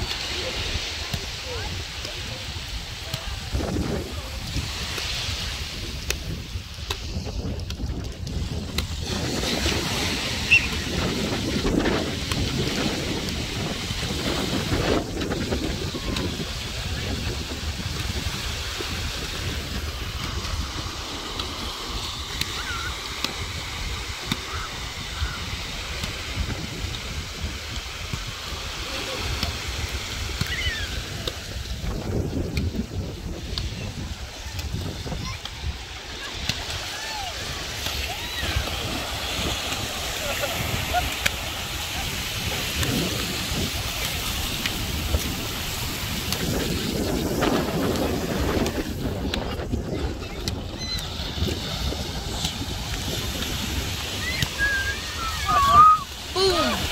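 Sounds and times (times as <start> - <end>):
sharp water slap: 0.0 - 16.5, 17.9 - 32.8, 34.3 - 49.7, 50.4 - 56.9
people wading through water: 0.0 - 56.9
small waves on beach: 0.0 - 56.9
wind buffeting microphone: 0.0 - 56.9.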